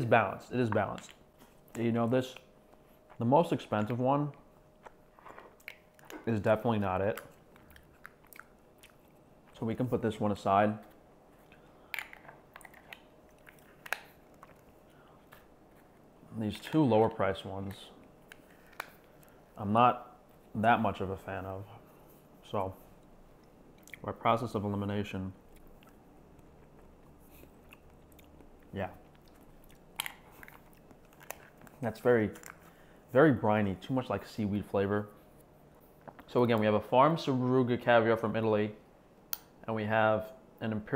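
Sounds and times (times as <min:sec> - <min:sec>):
mouth smacks and clicks chewing: 0:04.8 - 0:06.2, 0:07.2 - 0:09.6, 0:10.8 - 0:16.1, 0:23.0 - 0:24.1, 0:25.5 - 0:31.8.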